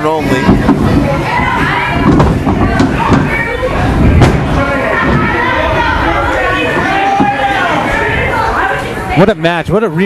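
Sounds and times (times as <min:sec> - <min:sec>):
indistinct voices shouting: 0:00.3 - 0:09.2.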